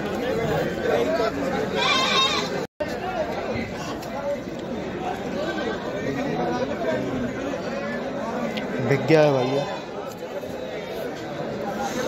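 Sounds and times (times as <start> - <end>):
crowd chatter: 0.0 - 12.0
sheep or goat bleating: 1.8 - 2.6.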